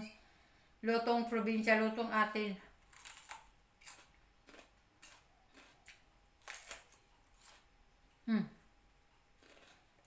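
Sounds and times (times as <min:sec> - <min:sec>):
chewing raw vegetable crunches: 0:02.8 - 0:07.8, 0:09.3 - 0:10.0.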